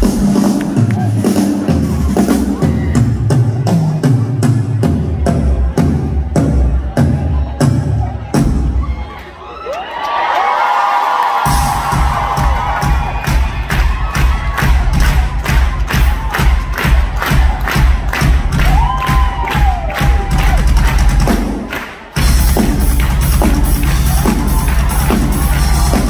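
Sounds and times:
drum kit playing steady beat: 0:00.0 - 0:08.9, 0:11.4 - 0:26.0
audience cheering and shouting: 0:00.0 - 0:26.0.

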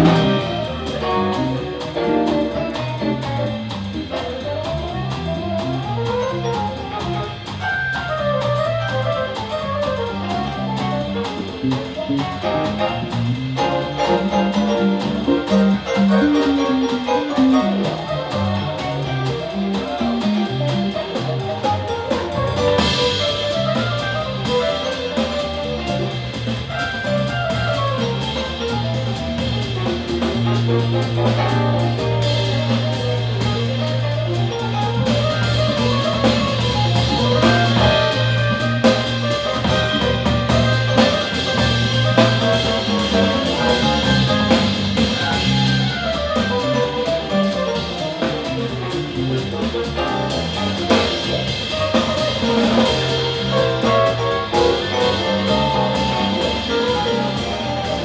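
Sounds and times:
jazz band playing: 0:00.0 - 0:58.0.

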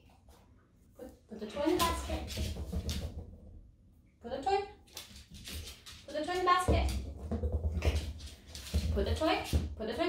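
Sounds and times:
dog paws tapping on wooden floor: 0:01.4 - 0:03.5, 0:04.8 - 0:10.0.

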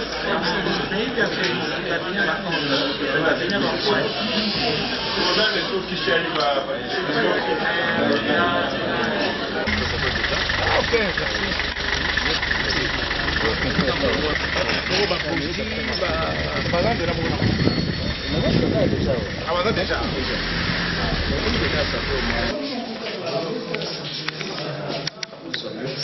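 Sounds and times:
men talking: 0:00.0 - 0:22.6
minibus engine idling: 0:09.6 - 0:22.5.

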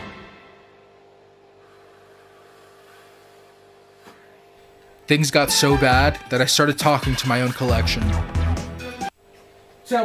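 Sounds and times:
steady low hum: 0:00.0 - 0:07.2.

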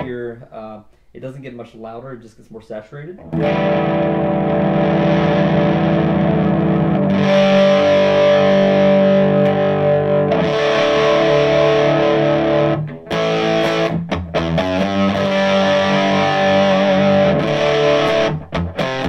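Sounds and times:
overdriven electric guitar chords: 0:03.2 - 0:19.0.

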